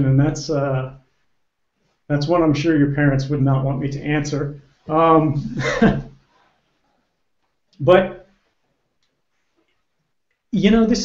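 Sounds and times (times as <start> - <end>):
man speaking: 0.0 - 1.0, 2.1 - 6.1, 7.8 - 8.3, 10.5 - 11.0.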